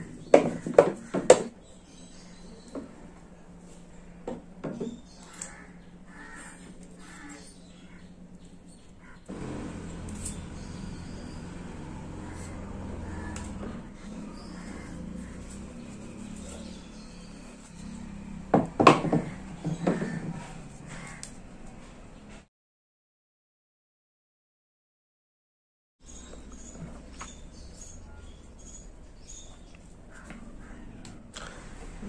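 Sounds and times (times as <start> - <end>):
steady low hum: 5.6 - 21.3
louder knocks: 18.5 - 20.4.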